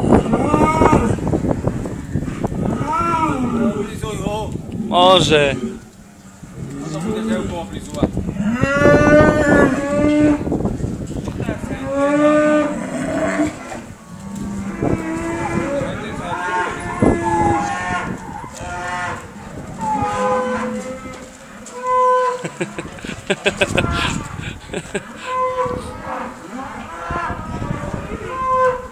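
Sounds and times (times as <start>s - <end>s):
cattle mooing: 2.6s - 4.0s, 8.3s - 10.5s, 11.8s - 28.9s.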